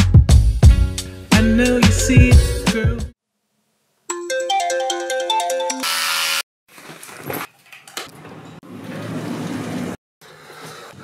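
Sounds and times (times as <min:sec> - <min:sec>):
phone ringtone melody: 0:04.1 - 0:05.9.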